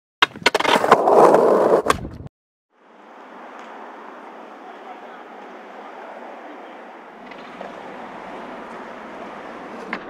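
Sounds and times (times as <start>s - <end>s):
skateboard wheels rolling on pavement: 0.2s - 2.2s, 2.8s - 10.0s
skateboard deck clacks: 7.2s - 10.0s.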